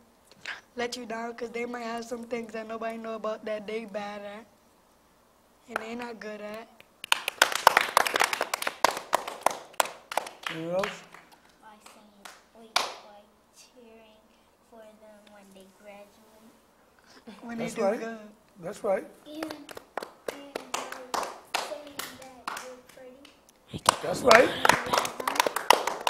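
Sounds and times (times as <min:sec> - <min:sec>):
small group clapping: 0:05.7 - 0:13.1, 0:19.3 - 0:26.0.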